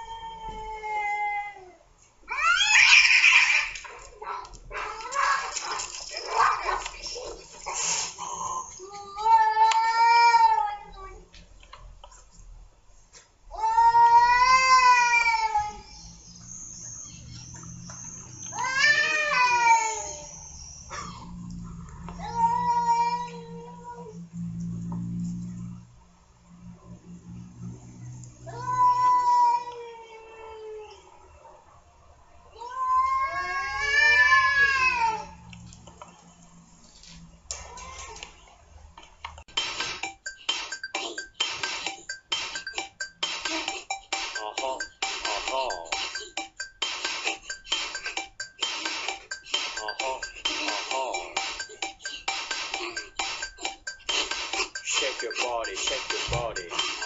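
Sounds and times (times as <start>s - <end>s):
cat yowling: 2.3s - 6.8s, 18.5s - 20.4s
cats screeching fighting: 2.3s - 10.8s, 13.6s - 16.1s, 18.2s - 21.5s, 32.6s - 35.4s.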